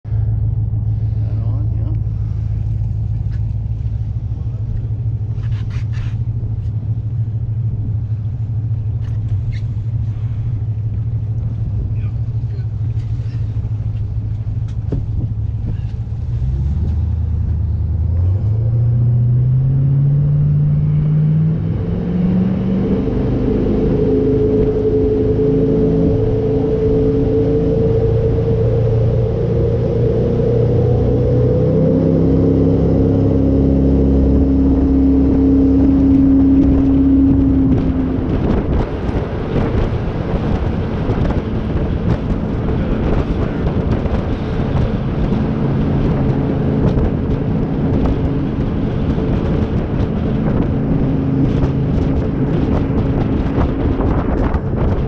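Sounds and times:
boat engine running: 0.0s - 55.0s.

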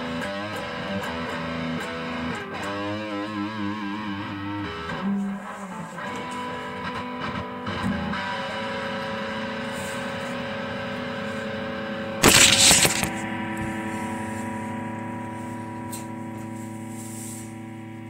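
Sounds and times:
electric guitar strumming: 0.0s - 18.0s
phone handling noise: 12.2s - 13.2s.

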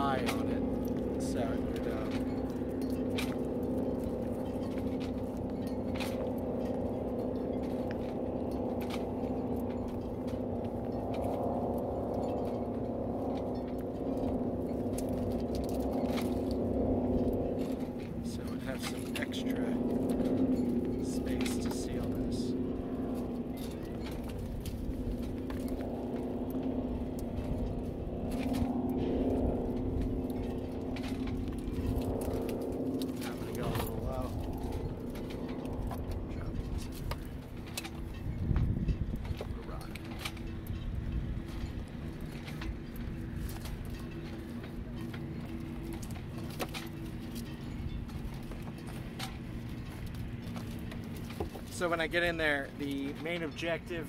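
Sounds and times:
low engine drone: 0.0s - 54.0s.

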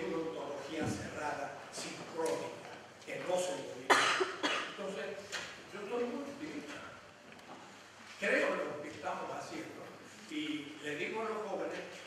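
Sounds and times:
man speaking: 0.0s - 7.1s, 8.2s - 12.0s
man coughing into microphone: 3.8s - 5.0s.

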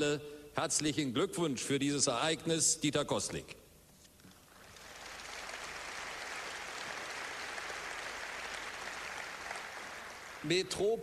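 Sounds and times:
large audience applauding: 4.5s - 10.8s.

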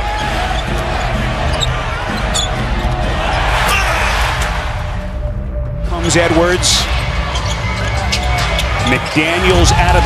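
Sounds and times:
arena crowd noise: 0.0s - 5.2s, 5.9s - 10.0s
sneaker squeaks: 0.4s - 2.6s.

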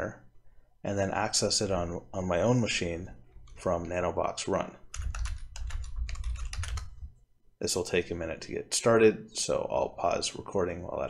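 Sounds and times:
keyboard typing: 4.9s - 7.1s.

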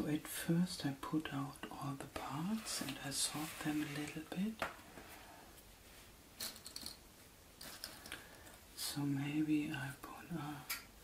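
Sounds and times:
puzzle pieces clicking and rustling: 6.4s - 7.0s, 7.6s - 8.6s.

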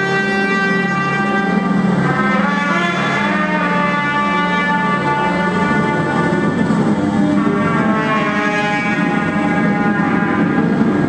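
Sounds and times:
brass horn: 0.0s - 11.0s
drone of sustained tones: 0.0s - 11.0s.

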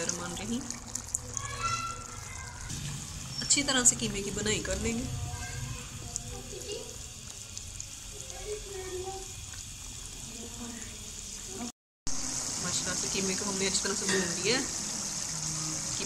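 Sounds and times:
meat and onions sizzling in oil: 0.0s - 16.0s
mixture bubbling hard: 0.0s - 16.0s.

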